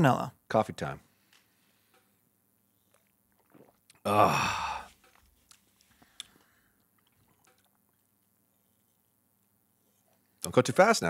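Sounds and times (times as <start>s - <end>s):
man gulping a drink: 2.8s - 8.4s.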